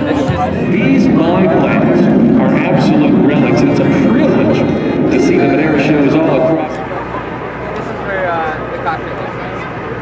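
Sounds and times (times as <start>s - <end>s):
people talking at once: 0.0s - 10.0s
steady low rumble: 0.0s - 10.0s.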